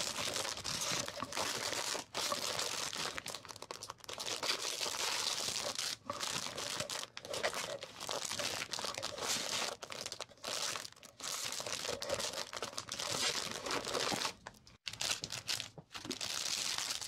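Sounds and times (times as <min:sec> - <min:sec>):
plastic sleeves and paper rustling: 0:00.0 - 0:17.0.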